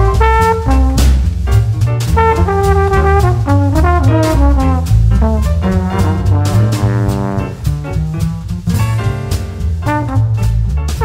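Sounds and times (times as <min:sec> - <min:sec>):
trombone melody: 0:00.0 - 0:08.2, 0:09.7 - 0:11.0
drum kit with ride cymbal: 0:00.0 - 0:11.0
grand piano: 0:00.0 - 0:11.0
upright bass: 0:00.0 - 0:11.0.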